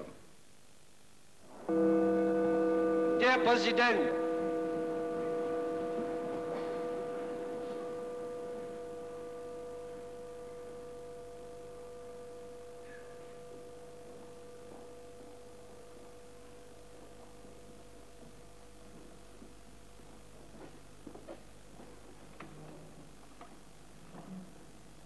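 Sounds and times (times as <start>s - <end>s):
bell ringing: 1.7s - 18.6s.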